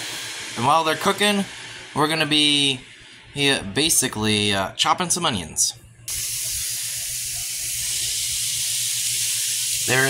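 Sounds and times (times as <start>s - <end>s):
low hum: 0.0s - 4.8s
burger patties sizzling on grill: 6.1s - 10.0s.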